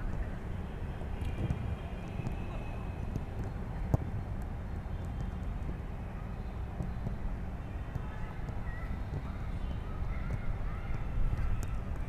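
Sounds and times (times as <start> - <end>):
low outdoor rumble: 0.0 - 12.0
footballs being kicked: 3.1 - 4.2.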